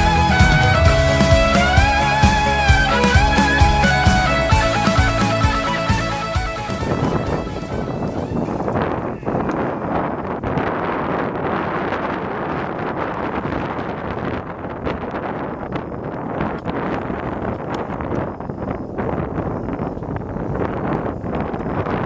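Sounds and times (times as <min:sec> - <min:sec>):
background music: 0:00.0 - 0:08.8
wind on microphone: 0:00.0 - 0:22.0.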